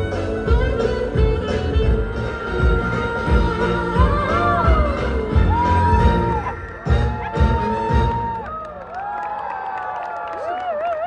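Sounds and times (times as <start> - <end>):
woman singing: 0.0 - 6.3
live band playing: 0.0 - 8.4
crowd cheering and whooping: 3.8 - 11.0.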